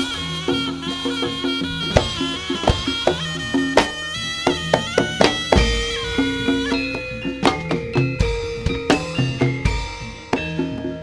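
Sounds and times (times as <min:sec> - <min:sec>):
drum strokes: 0:00.0 - 0:11.0
reedy shawm melody: 0:00.0 - 0:11.0.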